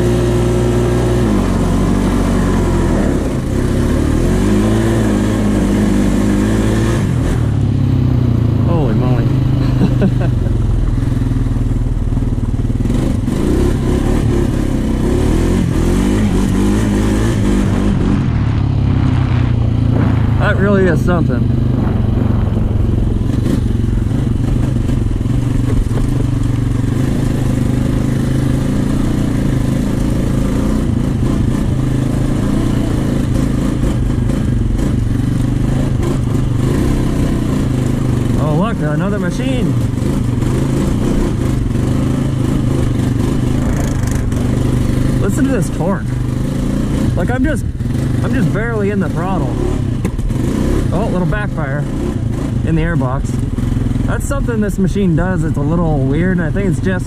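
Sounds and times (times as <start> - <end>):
four-wheeler engine running: 0.0 - 57.0.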